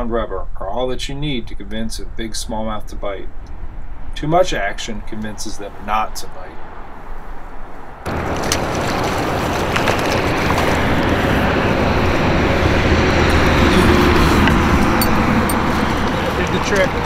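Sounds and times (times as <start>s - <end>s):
wind buffeting microphone: 7.4s - 17.0s
water around kayak hull: 8.1s - 17.0s.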